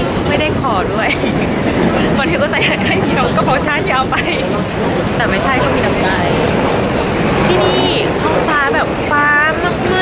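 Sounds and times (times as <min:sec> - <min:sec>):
passenger train rumbling: 0:00.0 - 0:10.0
people's voices: 0:00.0 - 0:10.0.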